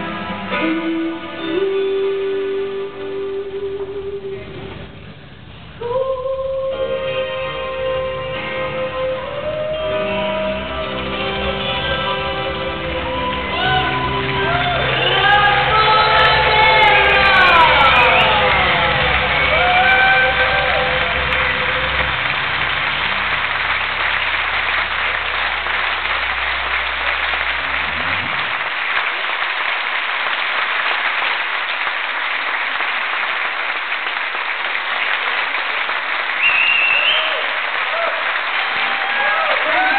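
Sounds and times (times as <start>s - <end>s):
live band playing: 0.0s - 4.8s, 7.0s - 28.2s
audience applauding: 10.8s - 39.9s
high whistle: 36.4s - 37.6s.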